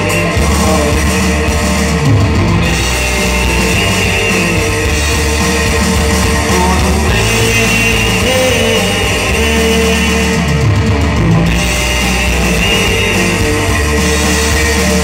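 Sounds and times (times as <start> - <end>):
electric guitar: 0.0 - 15.0
keyboard: 0.0 - 15.0.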